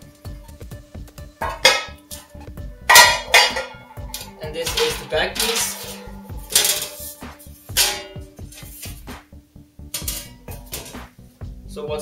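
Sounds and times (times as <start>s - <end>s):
background music with steady beat: 0.0s - 12.0s
sheet metal panel clanking and scraping: 1.4s - 2.1s, 2.9s - 9.1s, 10.0s - 11.1s.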